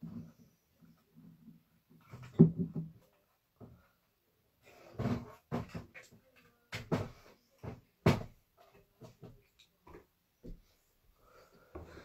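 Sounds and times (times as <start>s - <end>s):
short knocks and thumps: 6.7s - 8.4s.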